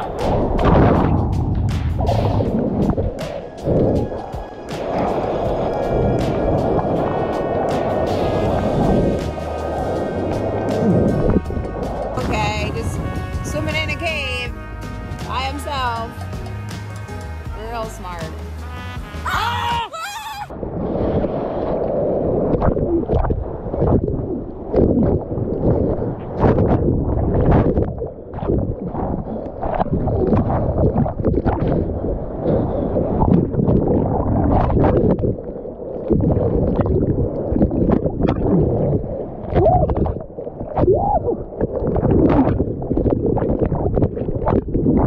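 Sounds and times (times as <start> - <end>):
seawater churning and bubbling: 0.0 - 18.2, 18.8 - 45.0.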